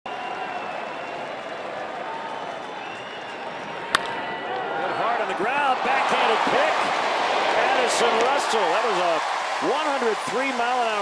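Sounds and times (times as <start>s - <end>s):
crowd shouting: 3.7s - 11.0s
crack of baseball bat: 3.9s - 4.3s.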